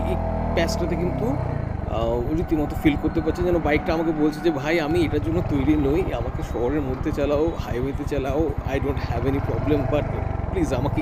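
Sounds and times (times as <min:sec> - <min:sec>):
motorcycle engine revving: 0:00.0 - 0:11.0.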